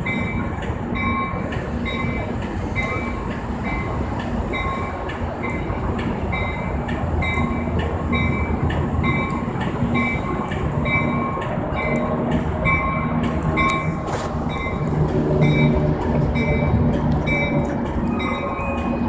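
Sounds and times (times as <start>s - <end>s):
train bell ringing: 0.0s - 19.0s
train engine and wheels rumbling: 0.0s - 19.0s
wheels clicking on rails: 0.0s - 19.0s.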